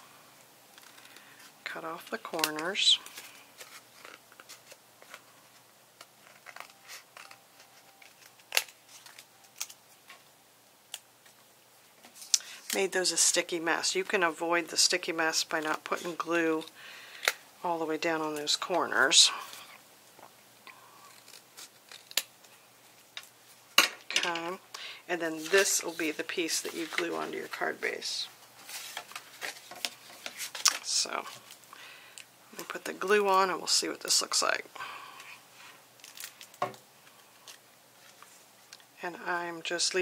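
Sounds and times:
paper rustling: 0:25.2 - 0:31.6.

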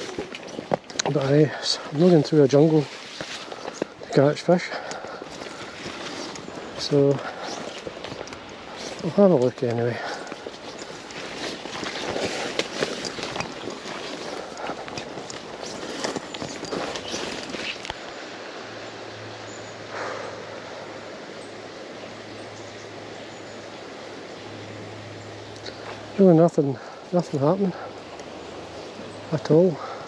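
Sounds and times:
crackles: 0:00.0 - 0:18.2
footsteps in undergrowth: 0:00.0 - 0:18.3
leaves and stems rustling: 0:00.0 - 0:30.0.

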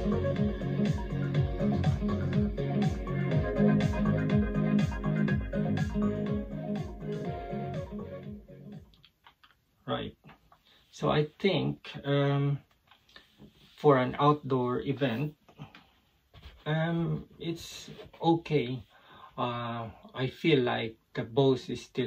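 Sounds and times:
steady bass beat: 0:00.0 - 0:08.9
upbeat music over speaker: 0:00.0 - 0:08.9.

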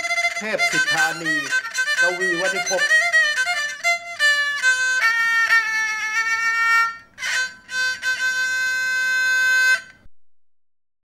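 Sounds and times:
held bowed-string note: 0:00.0 - 0:10.0.

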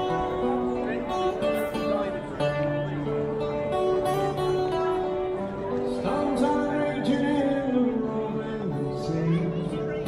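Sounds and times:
acoustic guitar melody: 0:00.0 - 0:10.0.

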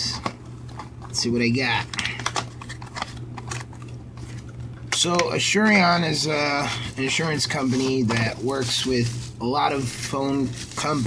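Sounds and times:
steady low hum: 0:00.0 - 0:11.0
paperboard rustling: 0:06.6 - 0:11.0.

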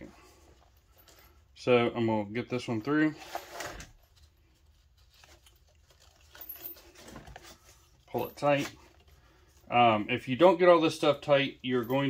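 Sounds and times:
faint rustling of strap: 0:00.0 - 0:01.6, 0:03.0 - 0:09.8.

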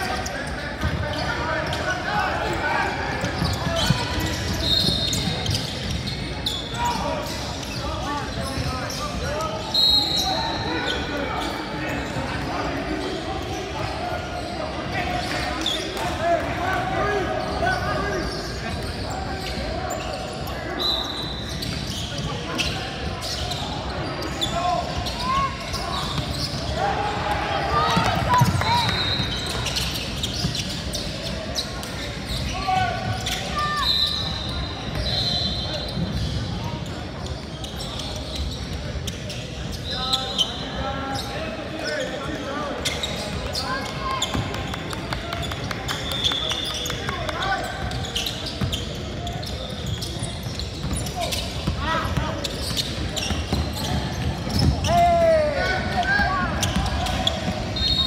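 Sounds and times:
echoing voices in a hall: 0:00.0 - 0:58.0.

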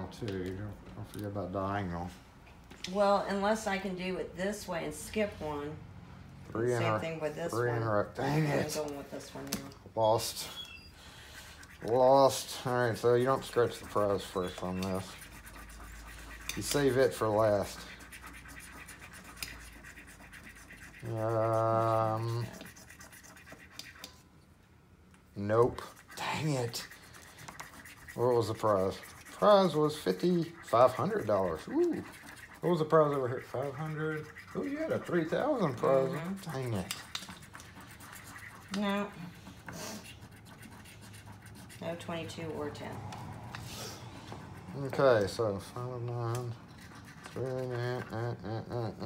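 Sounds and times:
coin scratching ticket: 0:11.5 - 0:24.0, 0:25.8 - 0:42.4.

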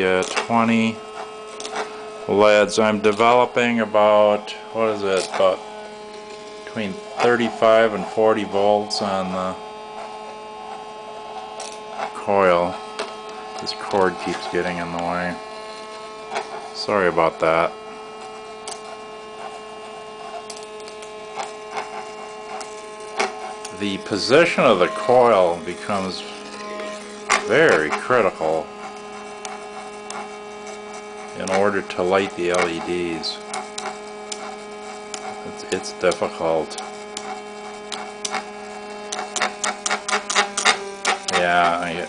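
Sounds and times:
electrical hum of pulse motor: 0:00.0 - 0:42.0.

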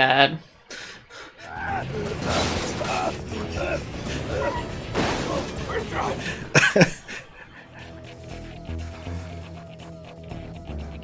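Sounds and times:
film music: 0:00.0 - 0:11.0.

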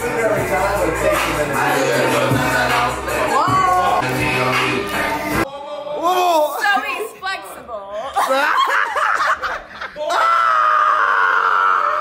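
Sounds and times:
people laughing and shouting: 0:05.1 - 0:12.0
long high-pitched scream: 0:10.1 - 0:12.0.

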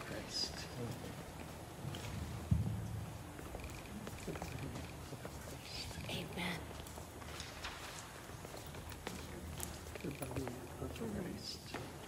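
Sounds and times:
faint small noises: 0:00.0 - 0:12.0.

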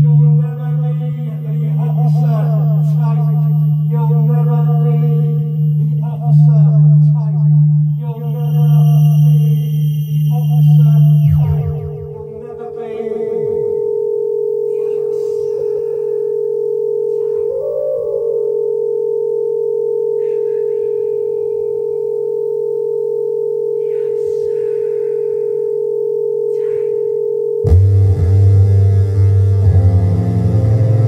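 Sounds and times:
low hum: 0:00.0 - 0:14.7, 0:25.6 - 0:31.0
electronic drone tone: 0:00.0 - 0:31.0
brief higher tone: 0:07.9 - 0:12.4.

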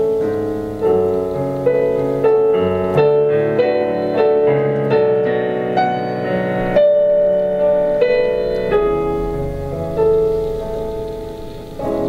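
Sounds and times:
slow piano piece: 0:00.0 - 0:12.0.

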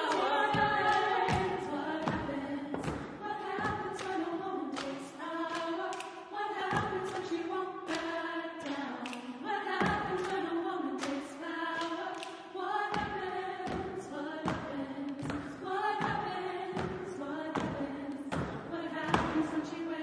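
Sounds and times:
women singing in harmony: 0:00.0 - 0:20.0
body percussion hits: 0:00.5 - 0:04.9, 0:12.9 - 0:19.6.

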